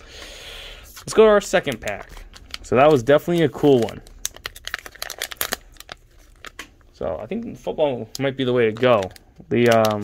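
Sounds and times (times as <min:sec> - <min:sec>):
foil packaging crinkling: 0:00.8 - 0:06.8, 0:08.2 - 0:10.0.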